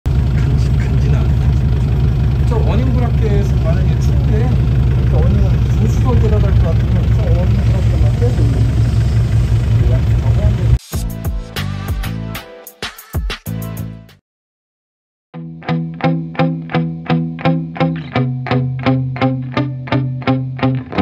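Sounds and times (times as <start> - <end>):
diesel engine idling: 0.1 - 10.8.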